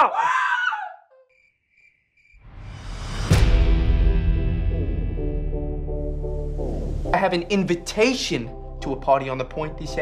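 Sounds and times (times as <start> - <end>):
crickets chirping faintly: 1.2 - 2.5.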